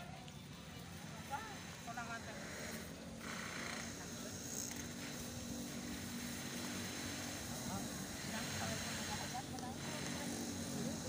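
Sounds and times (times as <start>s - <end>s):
faint chatter of voices: 0.0s - 11.0s.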